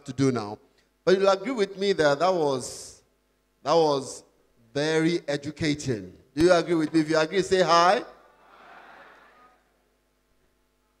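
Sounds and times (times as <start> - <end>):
audience shouting: 8.4 - 9.6.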